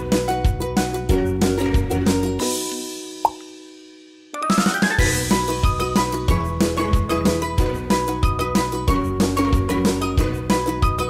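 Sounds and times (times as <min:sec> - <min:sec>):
children's background music: 0:00.0 - 0:11.0
short sharp upward blip: 0:03.2 - 0:03.5.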